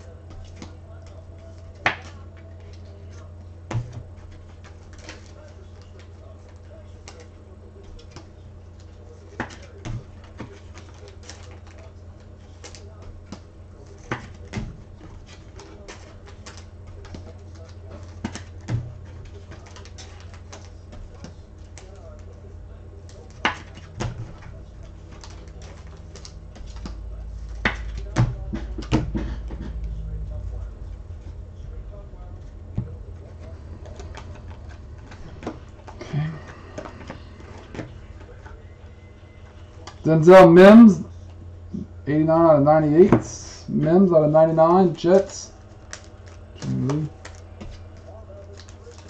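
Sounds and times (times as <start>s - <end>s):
steady low hum: 0.0s - 49.0s
low rumble: 28.8s - 39.0s.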